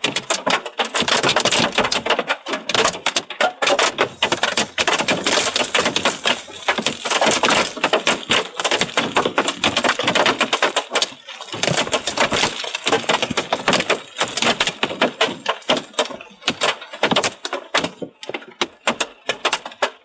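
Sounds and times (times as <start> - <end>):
hail clattering on a car: 0.0 - 20.0.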